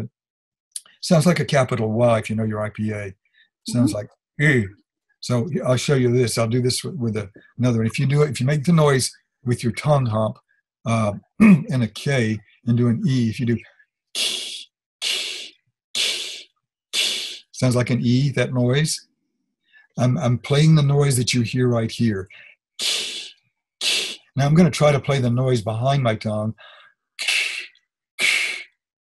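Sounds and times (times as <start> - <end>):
man hissing ee sound: 3.7 - 4.0, 14.2 - 16.4, 17.0 - 17.9, 22.3 - 24.4, 26.6 - 28.7.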